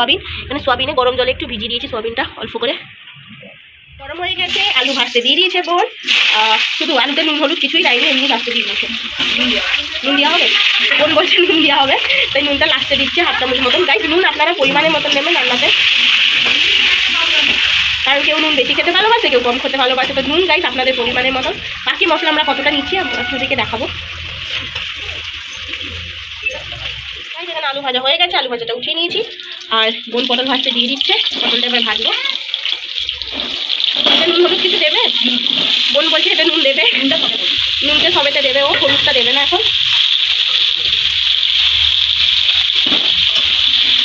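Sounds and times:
low hum: 0.0 - 4.8
food sizzling in hot oil: 4.4 - 28.4, 29.1 - 44.0.

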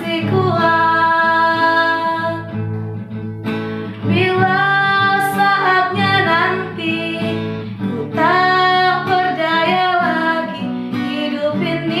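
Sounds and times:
woman singing: 0.0 - 2.7, 3.9 - 12.0
acoustic guitar: 0.0 - 12.0.

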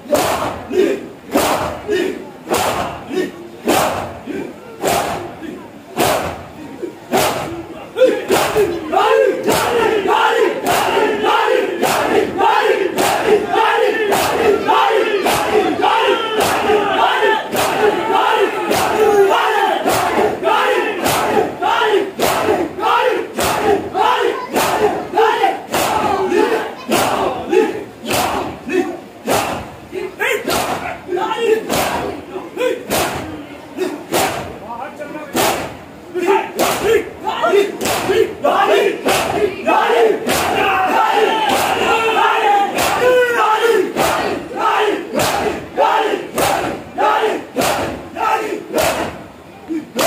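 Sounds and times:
crowd shouting: 0.0 - 50.0.

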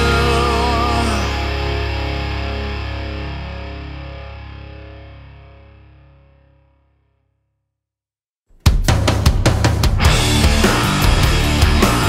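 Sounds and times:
distorted electric guitar chord: 0.0 - 6.7, 10.0 - 12.0.

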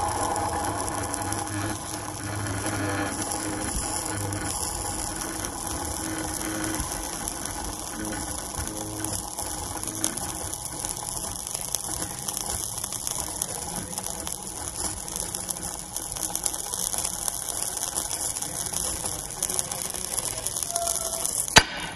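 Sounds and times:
irregular crackling: 0.0 - 21.9
steam hissing: 0.0 - 21.9.

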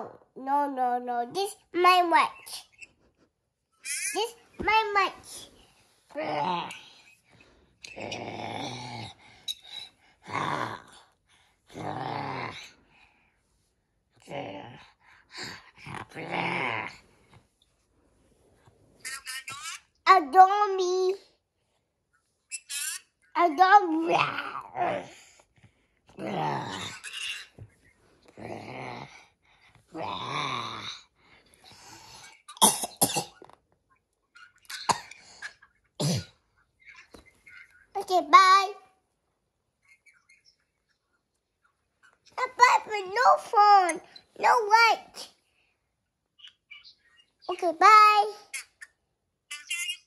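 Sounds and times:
young child coughing: 32.5 - 33.6, 34.7 - 35.2, 36.0 - 36.4.

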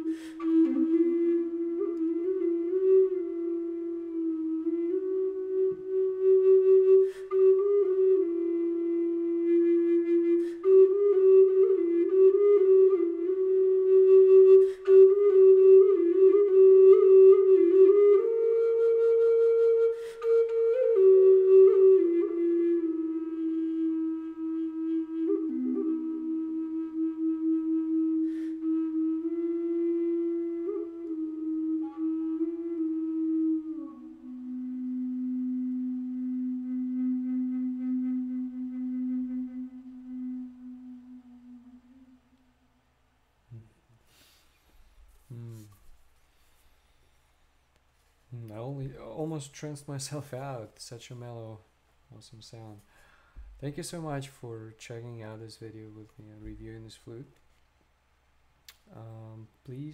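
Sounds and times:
wooden flute slow melody: 0.0 - 42.8, 43.5 - 47.2, 48.3 - 51.6, 52.2 - 57.4, 58.7 - 59.9.

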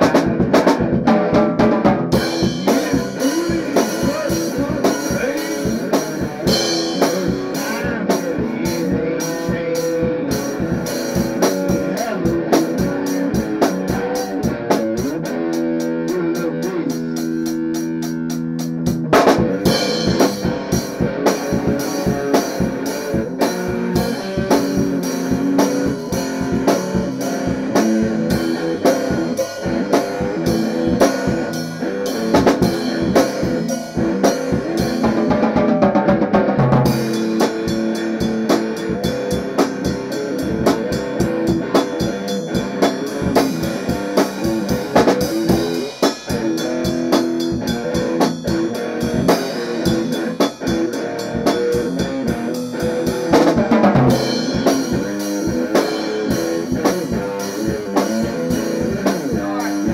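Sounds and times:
drum beat: 0.0 - 59.9
electric guitar: 0.0 - 59.9.

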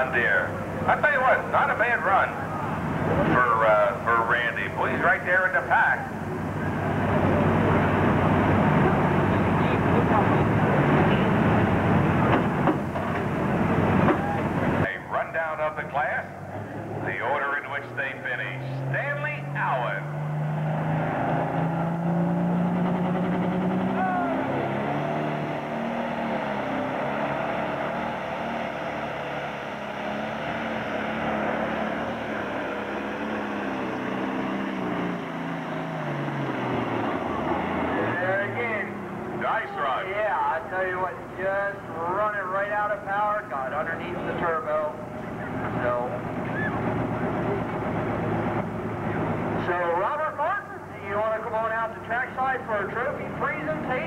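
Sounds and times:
voices: 0.0 - 20.2, 23.8 - 24.8, 36.8 - 54.0
tractor diesel engine at full throttle: 0.0 - 54.0.

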